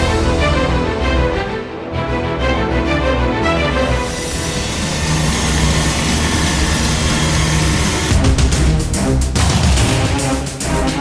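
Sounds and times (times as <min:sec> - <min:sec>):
dramatic theme music: 0:00.0 - 0:11.0
heavy low rumble: 0:04.0 - 0:09.1.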